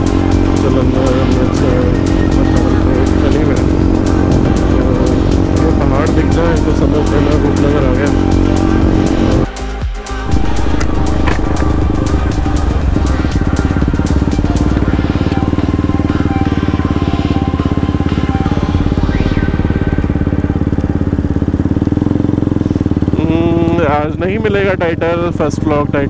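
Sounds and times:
motorcycle engine running: 0.0 - 26.0.

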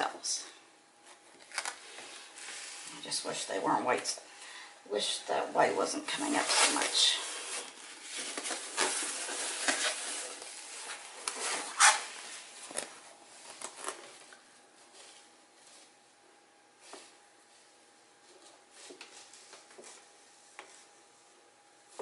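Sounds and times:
balloon rubbing and rustling: 6.3 - 12.6.

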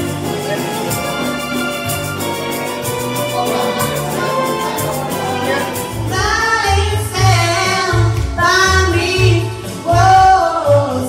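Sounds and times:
live dance band playing pop: 0.0 - 11.0.

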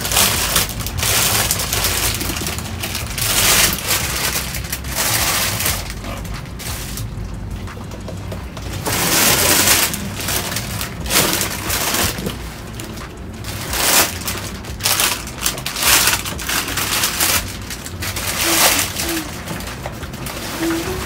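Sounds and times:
plastic bags crinkling and rustling: 0.0 - 21.0.

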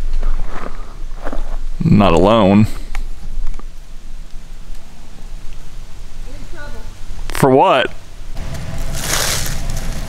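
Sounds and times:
footsteps on gravel: 8.5 - 10.0.

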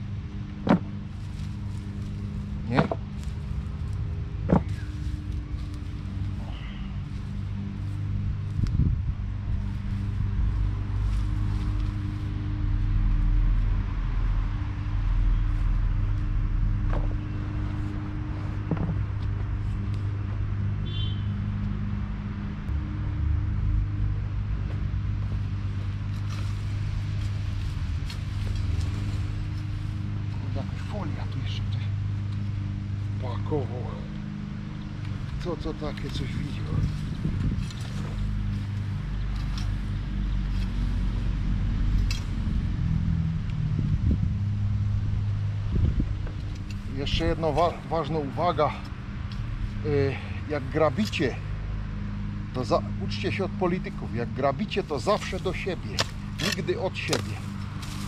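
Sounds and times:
low droning hum: 0.0 - 58.0
sharp knocks: 0.6 - 0.9.

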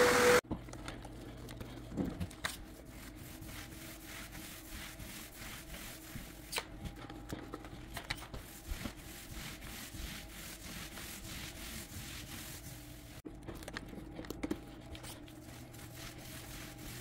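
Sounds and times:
paint roller rolling on floor: 1.2 - 13.2, 14.6 - 17.0.

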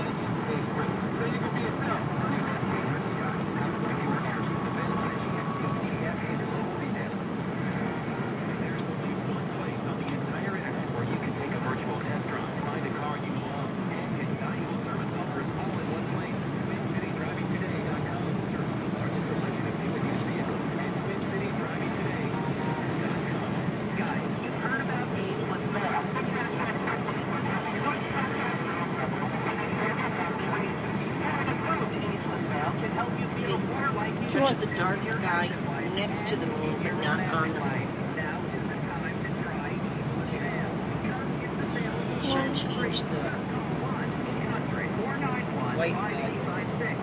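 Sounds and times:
car road and engine drone: 0.0 - 47.0
faint talk: 0.0 - 47.0.

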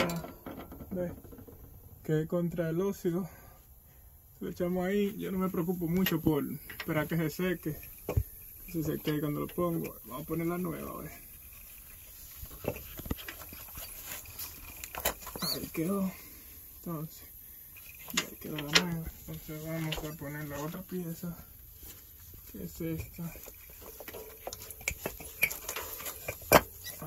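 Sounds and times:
metal and rubber clicks and knocks: 0.0 - 2.0, 17.8 - 19.2, 23.0 - 27.0.

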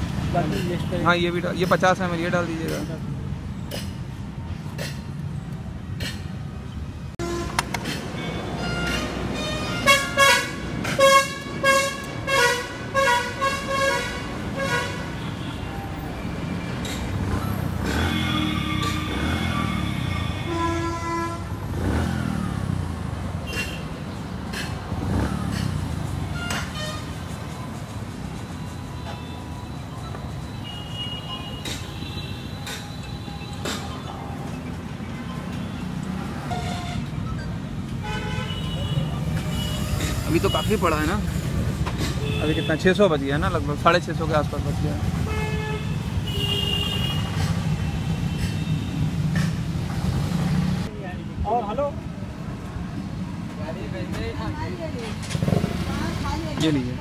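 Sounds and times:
street traffic rumbling: 0.0 - 57.0
vehicle horn tooting: 8.3 - 15.7, 17.8 - 21.6, 45.2 - 47.4.

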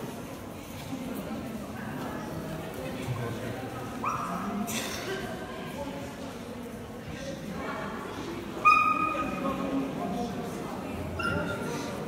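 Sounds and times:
low voices in a hall: 0.0 - 12.0.

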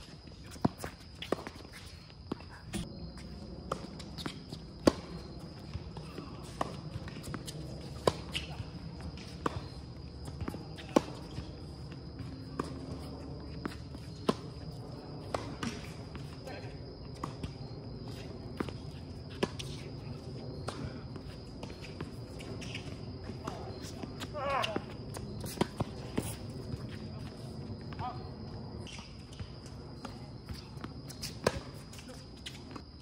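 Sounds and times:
tennis balls struck by rackets: 3.6 - 12.9.

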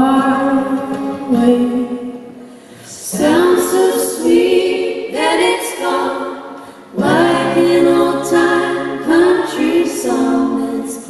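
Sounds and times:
female vocal trio singing harmony: 0.0 - 11.0.

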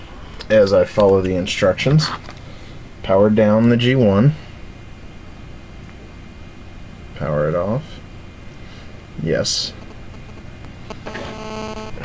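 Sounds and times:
faint low hum: 0.0 - 12.0
phone vibration buzz: 9.7 - 12.0.

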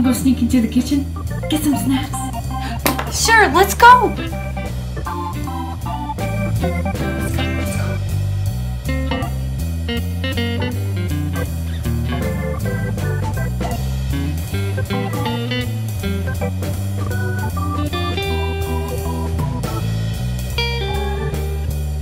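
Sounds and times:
background music with beat: 0.8 - 22.0.

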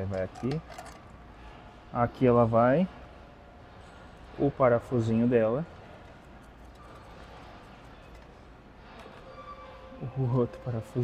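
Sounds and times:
light clicks of metal parts: 0.0 - 1.1, 6.0 - 9.2.

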